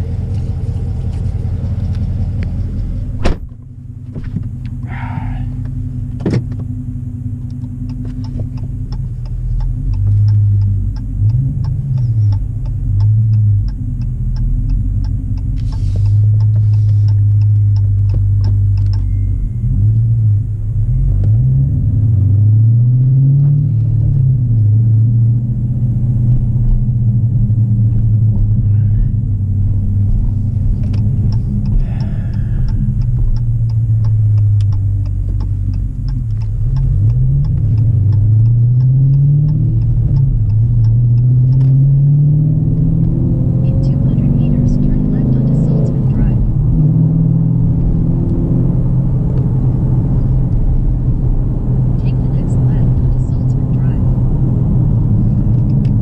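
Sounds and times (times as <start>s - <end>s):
car engine accelerating: 0.0s - 56.0s.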